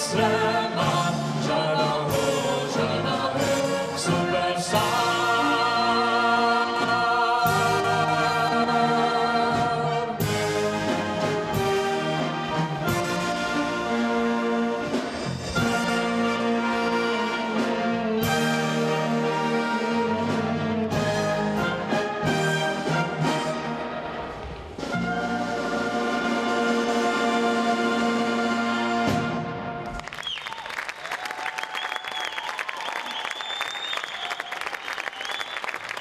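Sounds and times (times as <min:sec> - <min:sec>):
trombones: 0:00.0 - 0:30.0
wind band playing: 0:00.0 - 0:30.2
flutes: 0:02.1 - 0:36.0.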